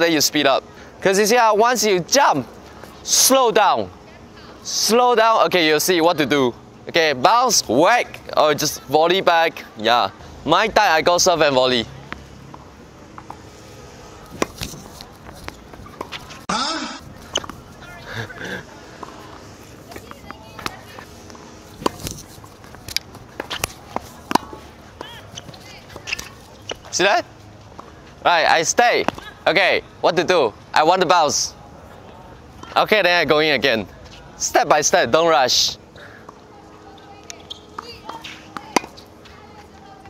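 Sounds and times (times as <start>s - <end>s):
tennis balls struck by rackets: 12.1s - 16.5s, 17.1s - 17.8s, 18.9s - 27.0s, 29.0s - 29.4s, 37.3s - 39.2s
tennis balls bouncing on hard court: 19.0s - 26.9s.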